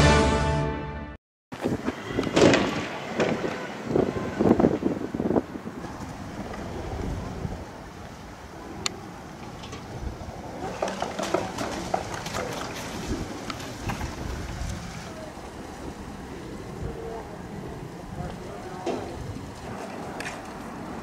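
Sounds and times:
fireworks crackling and popping: 1.6s - 4.9s.

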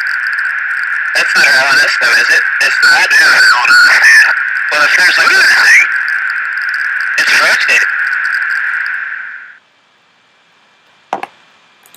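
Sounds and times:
cockpit intercom noise: 0.0s - 9.6s.

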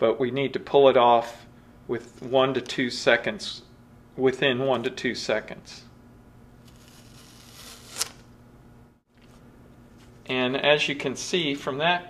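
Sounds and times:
low steady hum: 0.0s - 12.0s
tape ripping off metal: 6.6s - 8.3s
tape snapping free: 6.7s - 8.3s.

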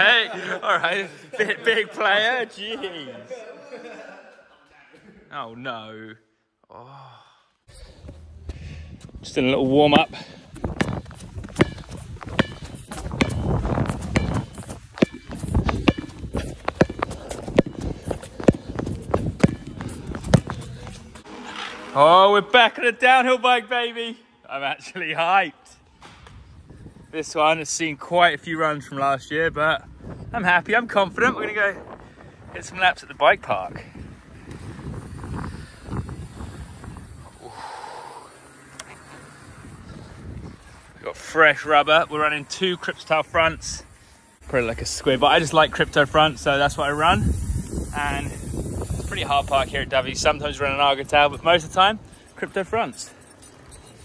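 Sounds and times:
bike tyres rumbling on tarmac: 8.0s - 22.1s, 33.4s - 41.8s
basketball bouncing on tarmac: 10.5s - 21.1s.

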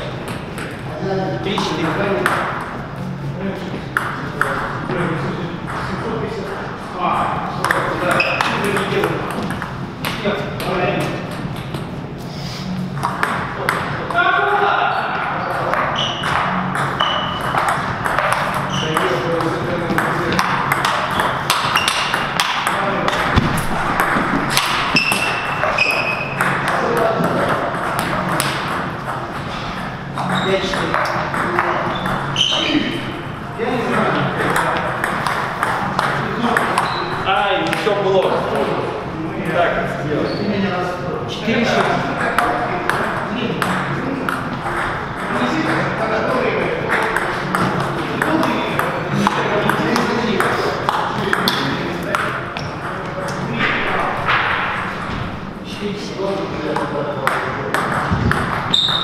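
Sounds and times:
voices talking: 0.0s - 59.0s.

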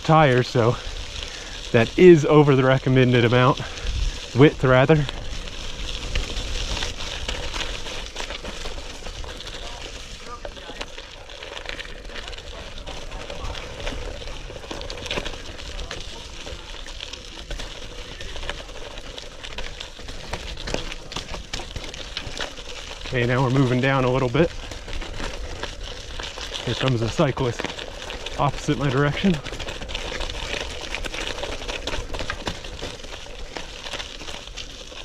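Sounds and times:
bike clicks and rattles: 0.0s - 35.0s
tyres crunching on gravel: 0.0s - 35.0s.

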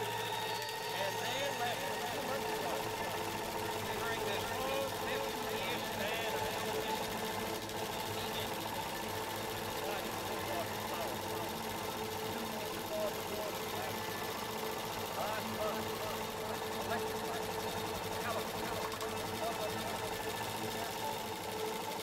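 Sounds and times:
embroidery machine stitching: 0.0s - 22.0s.

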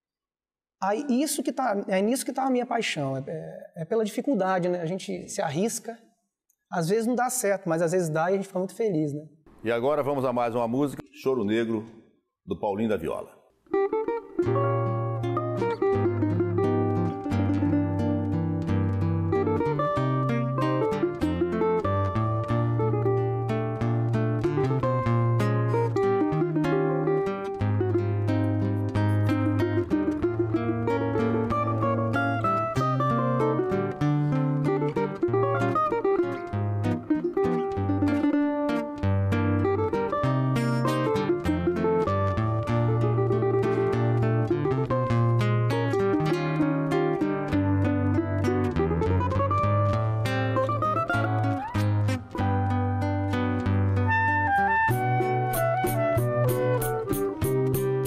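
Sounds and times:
cavaquinho melody: 13.7s - 58.0s
nylon-string acoustic guitar: 13.7s - 58.0s.

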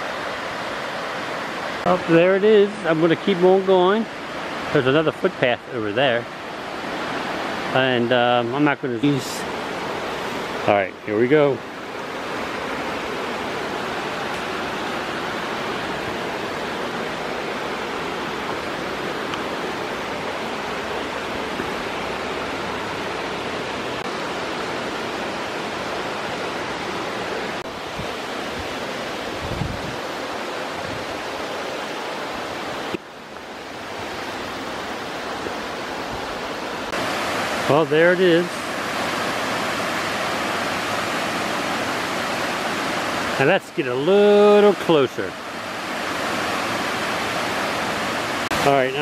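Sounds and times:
waterfall rushing: 0.0s - 49.0s.

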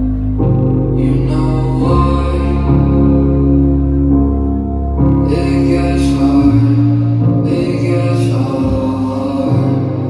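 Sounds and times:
person singing: 0.0s - 10.0s.

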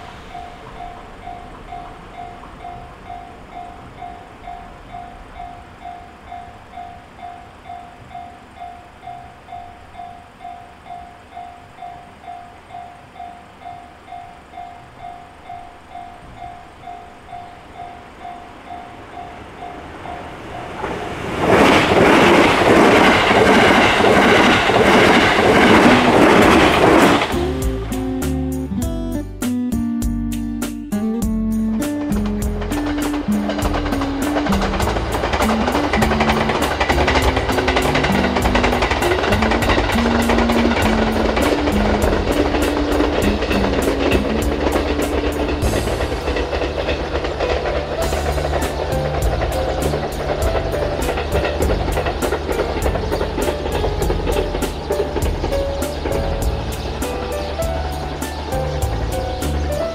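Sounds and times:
electric train rushing past: 0.0s - 59.9s
music with beat and bass: 26.6s - 59.9s.

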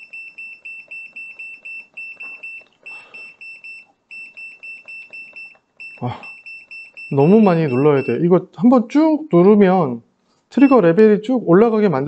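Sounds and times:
multimeter beeping: 0.0s - 8.3s, 10.6s - 11.0s.

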